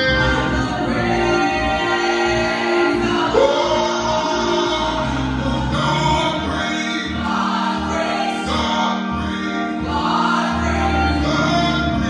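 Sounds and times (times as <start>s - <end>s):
held accompanying chords: 0.0s - 12.0s
women singing gospel song: 0.0s - 12.0s.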